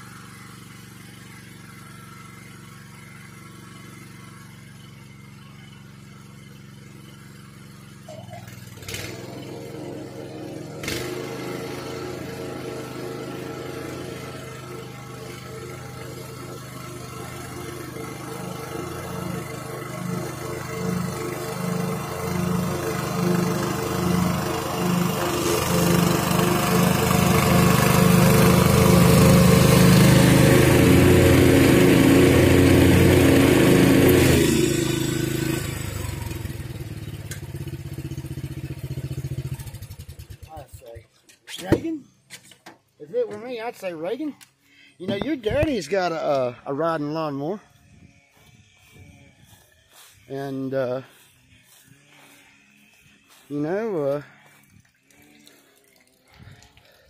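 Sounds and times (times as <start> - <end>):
riding lawn mower engine running: 0.0 - 57.0.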